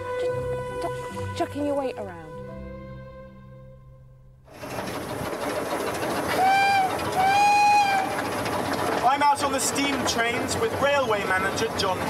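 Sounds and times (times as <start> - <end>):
steam locomotive running: 4.5 - 12.0
steam whistle blasts: 6.3 - 8.2.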